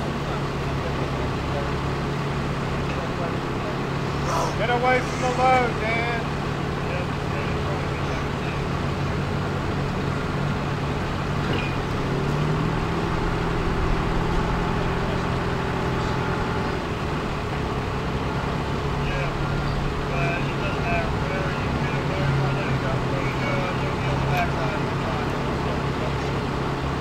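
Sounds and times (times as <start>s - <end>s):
crane diesel engine running: 0.0s - 27.0s.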